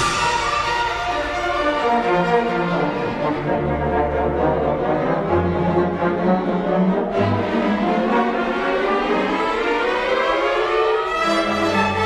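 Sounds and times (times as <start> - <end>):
winds holding sustained notes: 0.0 - 12.0.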